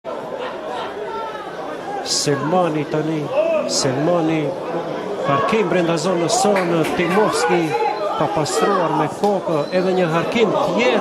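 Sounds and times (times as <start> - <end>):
people talking over one another: 0.1 - 11.0.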